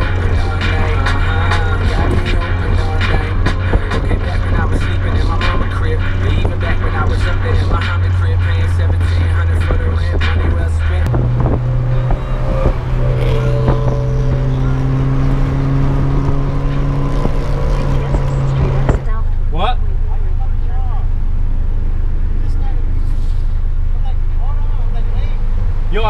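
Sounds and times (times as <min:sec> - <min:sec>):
car engine drone from cabin: 0:00.0 - 0:26.0.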